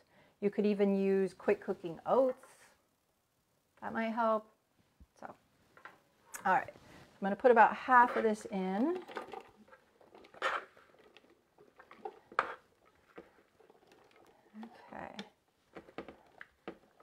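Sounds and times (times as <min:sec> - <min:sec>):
utensil scraping and knocking bowl: 0:07.8 - 0:17.0.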